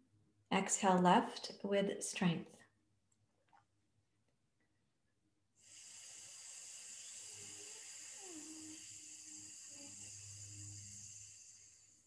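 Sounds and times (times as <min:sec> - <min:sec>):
forceful nasal exhale: 0:05.6 - 0:12.0.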